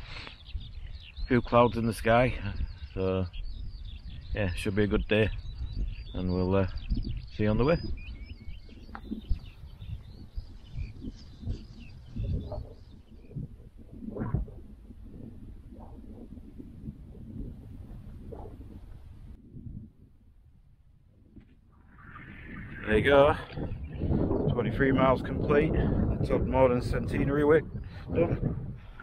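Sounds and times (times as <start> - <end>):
small birds chirping: 0.0 - 16.4, 21.8 - 29.0
wind rumble on microphone: 0.0 - 29.0.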